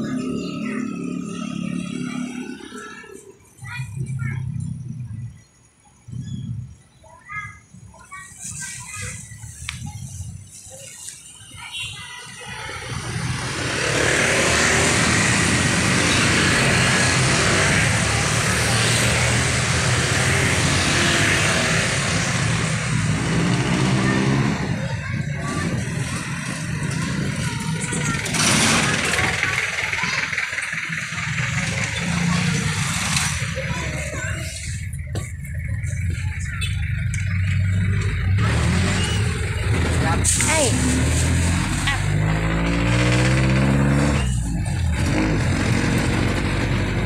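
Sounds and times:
vehicles passing close: 0:00.0 - 0:47.0.

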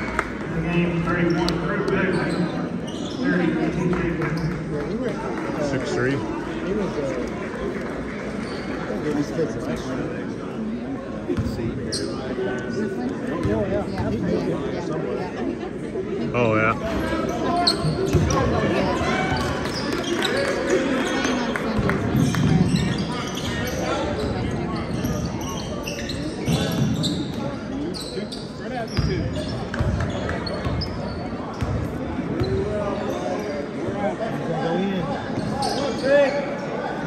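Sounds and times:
crowd chatter echoing: 0:00.0 - 0:37.0
basketball bouncing on wooden court: 0:18.1 - 0:18.4, 0:29.0 - 0:30.9, 0:31.6 - 0:32.6.

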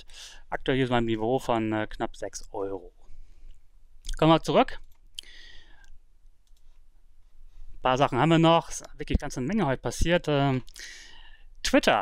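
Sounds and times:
computer mouse clicks: 0:04.8 - 0:06.8.

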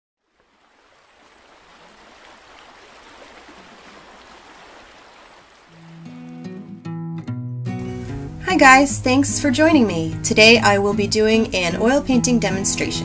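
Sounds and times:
rushing water: 0:00.2 - 0:06.8
guitar music: 0:05.8 - 0:13.0.

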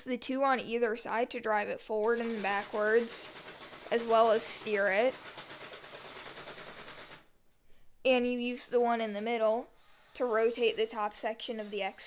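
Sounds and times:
toy motors driving plastic tracks: 0:02.0 - 0:07.2, 0:08.6 - 0:12.0.

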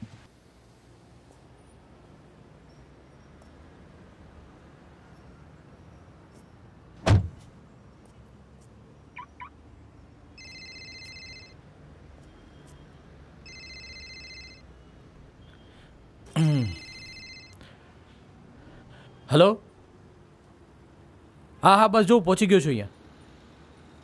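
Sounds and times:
car door shutting: 0:07.0 - 0:07.4
phone ringtone trill: 0:10.4 - 0:11.6, 0:13.4 - 0:14.6, 0:16.6 - 0:17.6.

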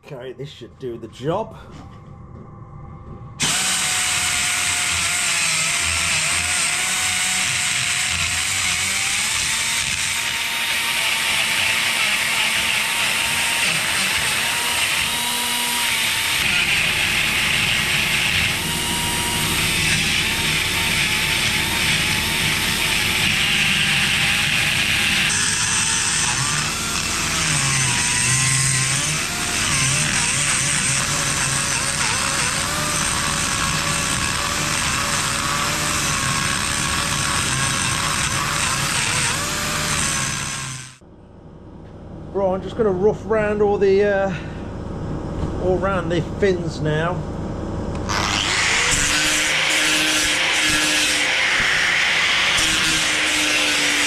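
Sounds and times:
die grinder grinding metal: 0:03.4 - 0:41.0, 0:47.9 - 0:54.0.

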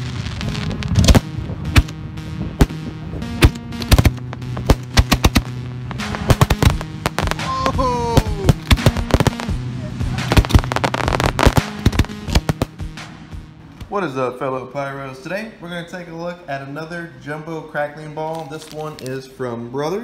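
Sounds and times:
falling tone: 0:00.0 - 0:12.8
firework bangs and crackles: 0:00.0 - 0:13.2
music with held bass notes: 0:00.0 - 0:13.7.

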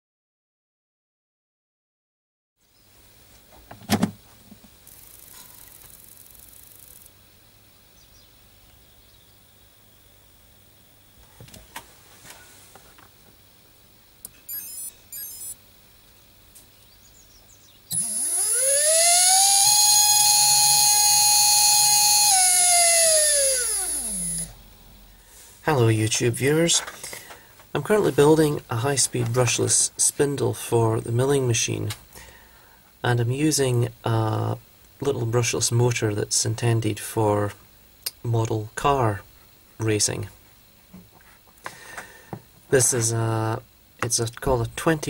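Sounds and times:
electric motor high-pitched whine: 0:14.5 - 0:15.6, 0:17.9 - 0:24.7
short high beeps: 0:14.5 - 0:15.6.

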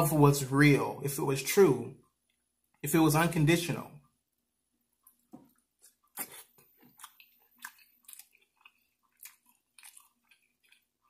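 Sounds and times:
close-miked chewing: 0:04.9 - 0:11.0.

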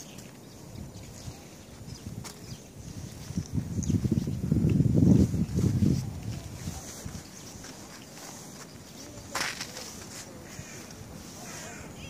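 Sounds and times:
footsteps on packed snow: 0:01.1 - 0:12.0.

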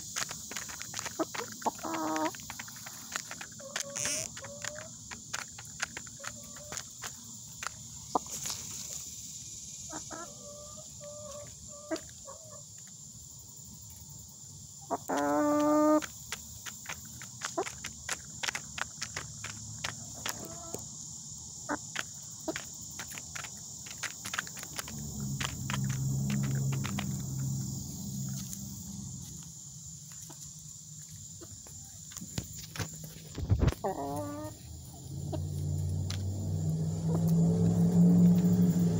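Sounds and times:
hens clucking: 0:00.0 - 0:08.5, 0:09.9 - 0:12.7, 0:14.9 - 0:20.8, 0:21.7 - 0:29.4, 0:32.8 - 0:34.6
beaks tapping plastic feeder: 0:00.0 - 0:08.6, 0:14.9 - 0:20.8, 0:21.7 - 0:28.8
low rumble: 0:24.7 - 0:29.7.

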